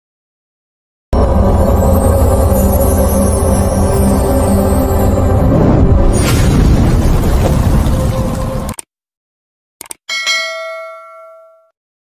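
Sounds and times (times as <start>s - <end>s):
dark electronic music: 1.2s - 6.2s
bright bell ding: 10.1s - 11.8s.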